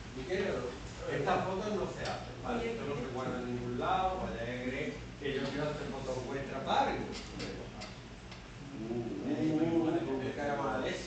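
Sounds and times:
low steady hum: 0:00.0 - 0:11.0
faint irregular clicks: 0:07.1 - 0:08.5.

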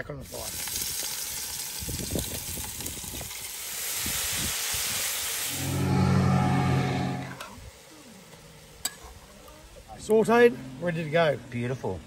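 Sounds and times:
vegetables sizzling in a pot: 0:00.0 - 0:11.8
low steady hum: 0:05.6 - 0:07.6.

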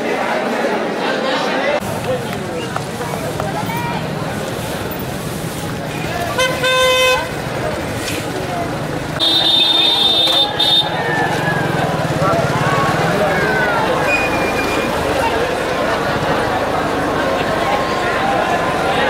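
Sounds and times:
crowd chattering: 0:00.0 - 0:19.0.

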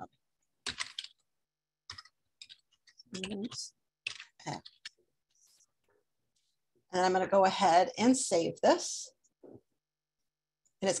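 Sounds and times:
keyboard typing: 0:00.0 - 0:05.0.

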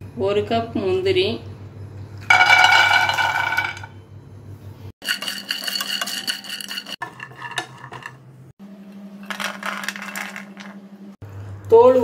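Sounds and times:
nuts rattling while stirred in pan: 0:02.3 - 0:03.8, 0:05.0 - 0:08.1, 0:09.2 - 0:10.8
nuts clattering into a pan: 0:02.3 - 0:03.9, 0:09.2 - 0:10.8.

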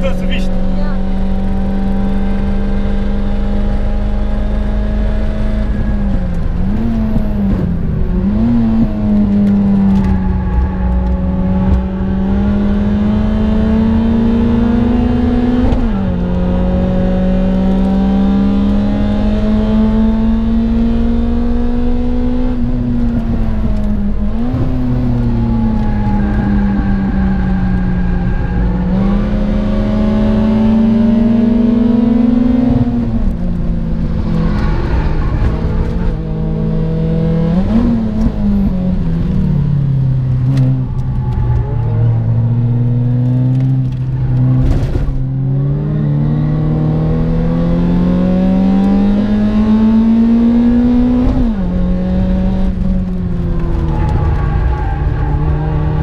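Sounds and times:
car engine revving: 0:00.0 - 0:56.0
road and wind noise: 0:00.0 - 0:56.0.

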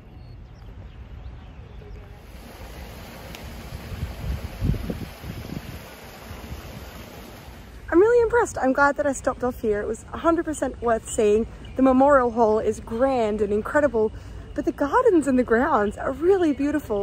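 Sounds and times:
wind buffeting microphone: 0:00.0 - 0:08.5
steady outdoor hiss: 0:00.0 - 0:17.0.

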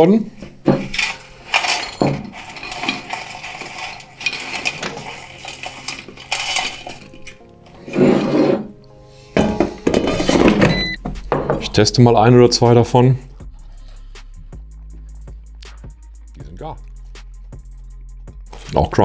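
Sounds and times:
background music: 0:00.0 - 0:19.0.

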